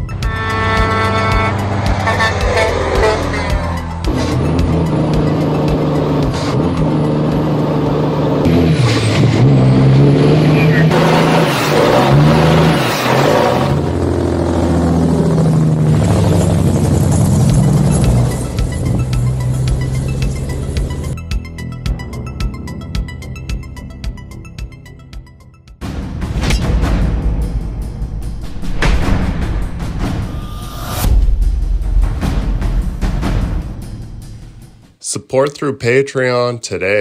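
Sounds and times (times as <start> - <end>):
electronic music: 0.0 - 6.4
diesel truck engine revving: 0.0 - 21.2.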